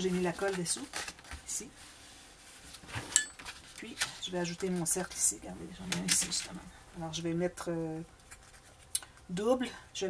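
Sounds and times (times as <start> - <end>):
paper rustle: 0.0 - 5.3.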